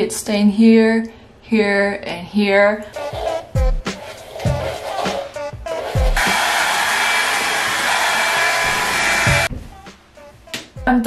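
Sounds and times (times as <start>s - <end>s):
hair dryer blowing: 6.0s - 9.5s.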